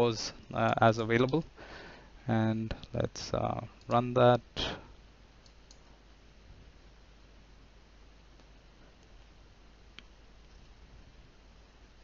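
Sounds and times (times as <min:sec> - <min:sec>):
computer mouse clicks: 0:05.4 - 0:05.9.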